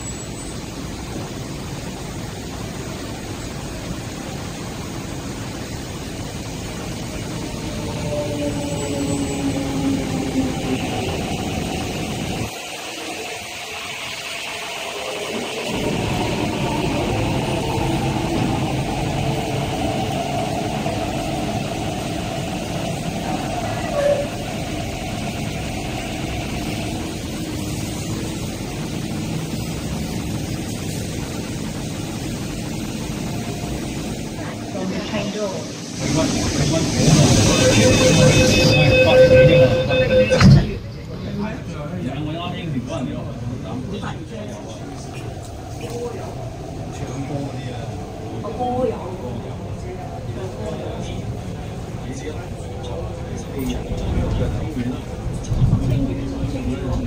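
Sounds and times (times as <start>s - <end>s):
train wheels rumbling: 0.0s - 57.0s.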